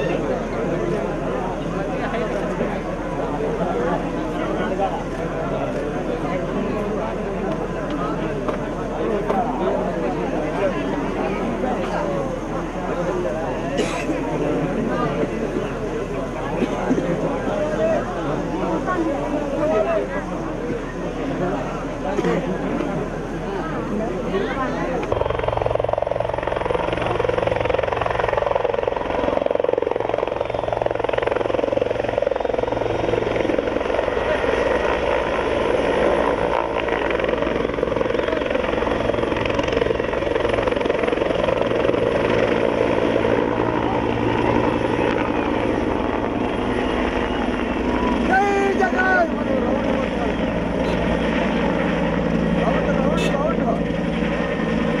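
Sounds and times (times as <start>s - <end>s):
helicopter rotor and turbine: 0.0s - 55.0s.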